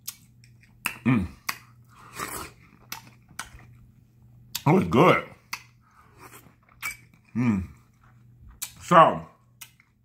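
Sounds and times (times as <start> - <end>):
chewing clicks: 0.0 - 1.7
wet slurping bite: 1.4 - 3.5.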